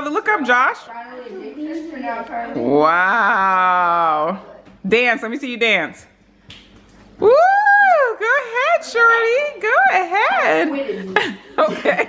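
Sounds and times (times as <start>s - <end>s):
person cheering woo: 7.2s - 8.2s.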